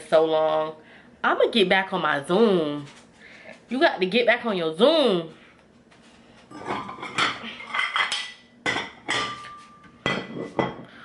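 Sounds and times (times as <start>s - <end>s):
dishes and cutlery clattering: 6.5s - 10.9s.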